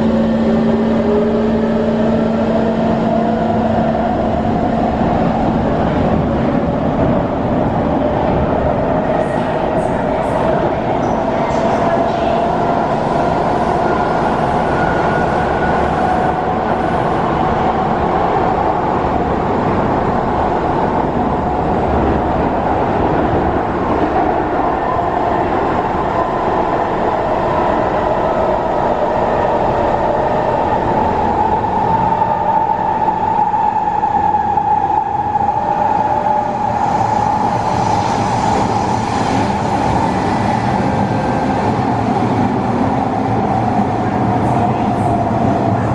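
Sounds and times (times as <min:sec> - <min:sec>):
wheels rumbling on rail: 0:00.0 - 0:45.9.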